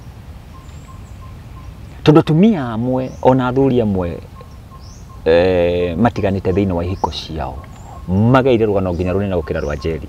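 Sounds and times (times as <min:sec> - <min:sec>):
faint outdoor background noise: 0:00.0 - 0:10.0.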